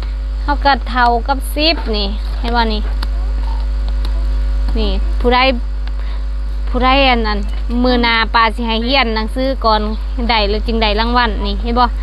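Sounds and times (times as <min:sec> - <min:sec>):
faint high steady tones: 0:00.0 - 0:12.0
low electrical hum: 0:00.0 - 0:12.0
person speaking: 0:00.0 - 0:12.0.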